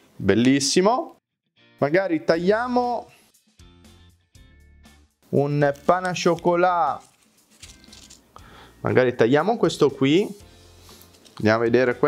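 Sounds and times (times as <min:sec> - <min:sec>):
pastry crackling and rustling: 0:05.6 - 0:08.2.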